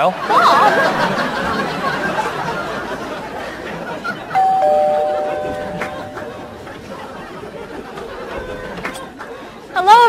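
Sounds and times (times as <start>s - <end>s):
two-tone doorbell chime: 4.4s - 6.7s.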